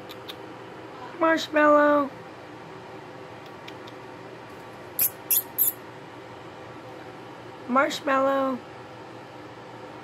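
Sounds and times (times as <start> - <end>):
person making hissing psst calls: 5.0 - 5.8.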